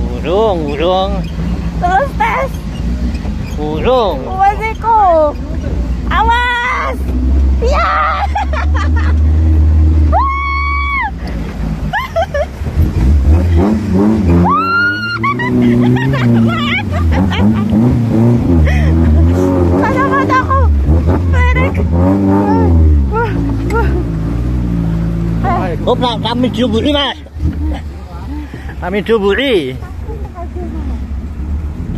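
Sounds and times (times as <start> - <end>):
jeep engine revving: 0.0 - 31.9.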